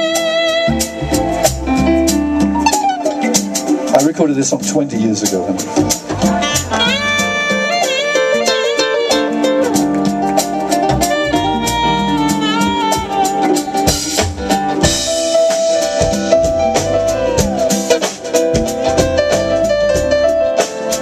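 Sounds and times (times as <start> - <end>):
saxophone melody: 0.0 - 3.9, 5.6 - 21.0
smooth jazz band playing: 0.0 - 21.0.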